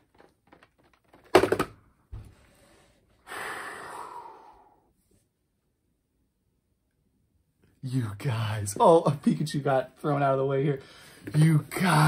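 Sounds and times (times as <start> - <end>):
breathy exhale: 2.4 - 4.9
man gasping: 3.2 - 4.9.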